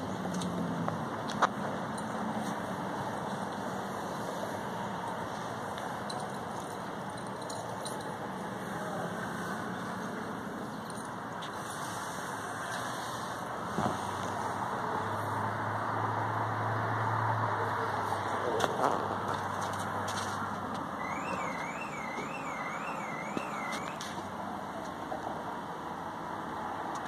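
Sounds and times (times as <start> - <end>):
steady background noise: 0.0 - 27.0
vehicle engine humming: 0.0 - 27.0
warbling electronic alarm tone: 21.0 - 24.0.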